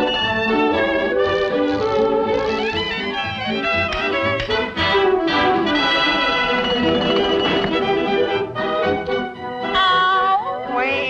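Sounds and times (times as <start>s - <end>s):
orchestral cartoon music: 0.0s - 11.0s.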